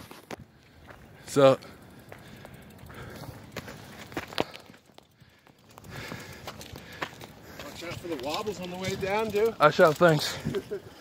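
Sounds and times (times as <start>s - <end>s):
footsteps on dirt trail: 0.0s - 11.0s.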